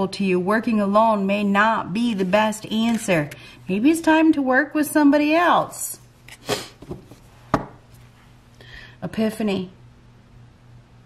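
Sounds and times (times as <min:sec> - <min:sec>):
cards tapping on table: 0:06.8 - 0:07.8.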